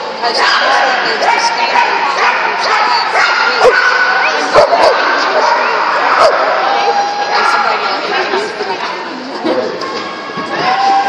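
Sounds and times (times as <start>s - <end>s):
people chatting in echoing hall: 0.0s - 11.0s
dog barking: 0.5s - 6.5s.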